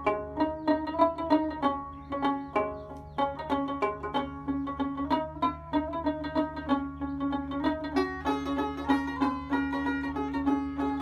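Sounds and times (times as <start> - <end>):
plucked string instrument: 0.0 - 11.0.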